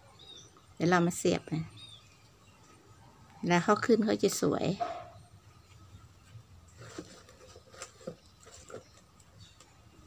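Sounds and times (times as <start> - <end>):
soft rustling of soil: 0.0 - 10.0.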